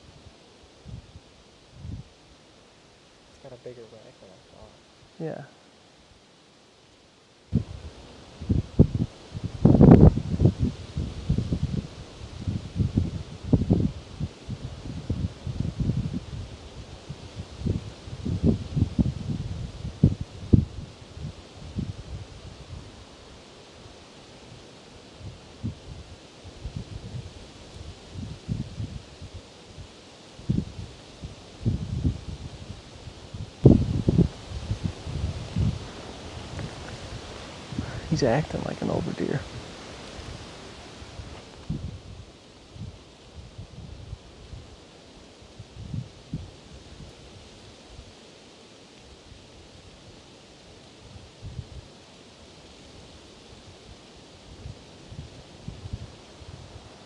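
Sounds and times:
wind buffeting microphone: 0.0s - 2.2s, 7.5s - 48.2s, 51.0s - 51.9s, 52.7s - 57.0s
leaves rustling in wind: 0.0s - 57.0s.

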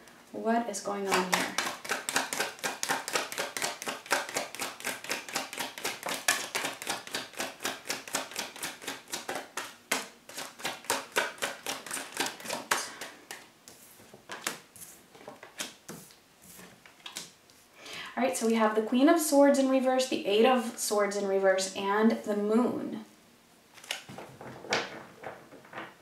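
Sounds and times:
cards being shuffled: 1.1s - 17.4s, 23.8s - 26.0s.

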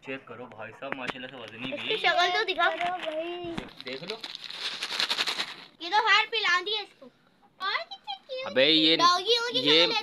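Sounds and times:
plastic packet crinkling: 1.2s - 5.8s.

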